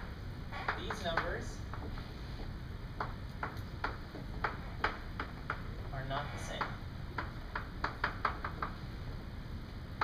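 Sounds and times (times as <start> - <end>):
chalk tapping on blackboard: 0.5 - 8.9.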